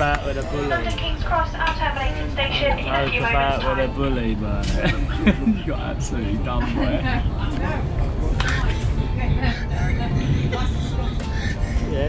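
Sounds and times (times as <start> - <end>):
train rumbling: 0.0 - 12.0
voices: 0.0 - 12.0
laughter: 4.6 - 5.8, 6.6 - 7.2.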